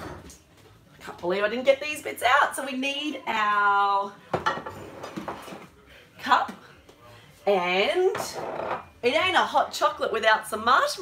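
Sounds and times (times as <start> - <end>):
ceramic dishes knocking on benchtop: 4.3 - 5.4.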